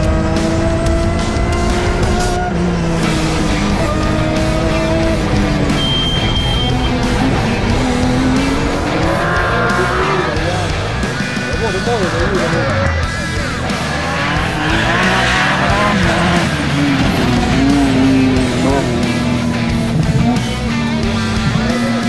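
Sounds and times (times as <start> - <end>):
background music: 0.0 - 22.0
car engine revving hard: 0.0 - 22.0.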